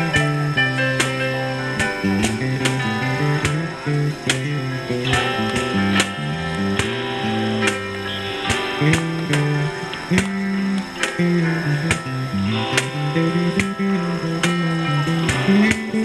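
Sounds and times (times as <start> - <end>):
bass line: 0.0 - 16.0
plucked acoustic guitar: 0.0 - 16.0.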